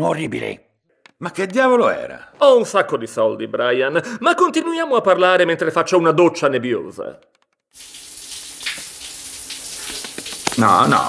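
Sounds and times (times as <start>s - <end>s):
shower running: 7.7s - 11.0s.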